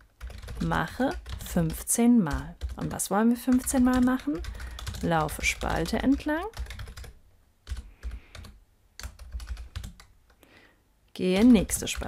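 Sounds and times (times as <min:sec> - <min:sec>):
computer keyboard typing: 0:00.0 - 0:10.4, 0:11.3 - 0:12.0.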